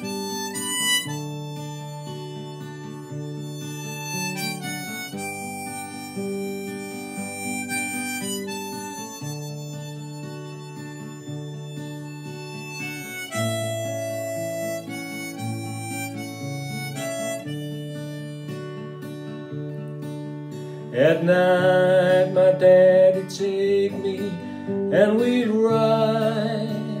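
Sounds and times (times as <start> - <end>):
harmonica slow melody: 0.0 - 27.0
strummed acoustic guitar: 0.0 - 27.0.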